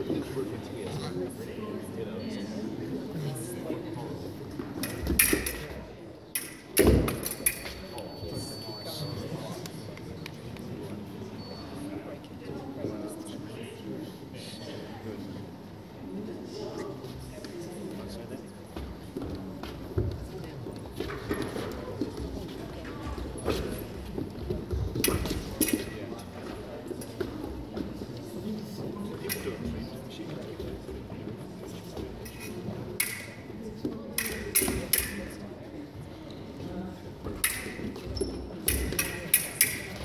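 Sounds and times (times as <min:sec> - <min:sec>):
murmur of voices: 0:00.0 - 0:40.0
fencing blades clacking: 0:04.8 - 0:07.9, 0:24.9 - 0:26.1, 0:29.2 - 0:29.7, 0:32.2 - 0:35.4, 0:37.3 - 0:40.0.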